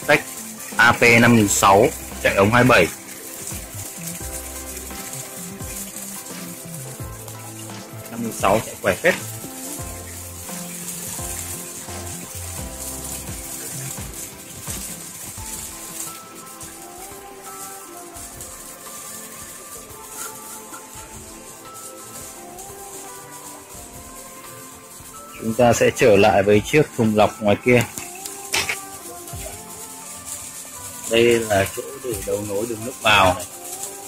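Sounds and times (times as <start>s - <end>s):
instrumental background music: 0.0s - 34.0s
water splashing into pond: 0.0s - 34.0s.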